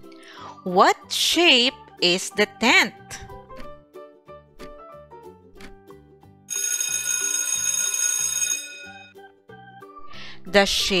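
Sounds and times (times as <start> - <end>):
light background music: 0.0 - 11.0
alarm clock bell ringing: 6.5 - 9.2.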